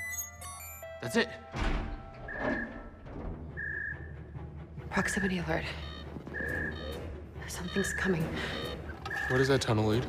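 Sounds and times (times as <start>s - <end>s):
low droning film music: 0.8s - 10.0s.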